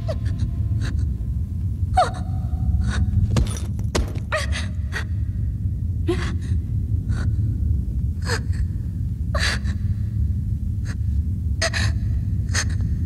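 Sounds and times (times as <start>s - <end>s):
low steady rumble: 0.0s - 13.0s.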